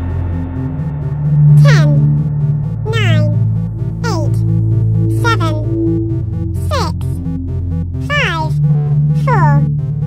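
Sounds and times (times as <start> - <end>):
electronic music with synth notes: 0.0 - 10.0.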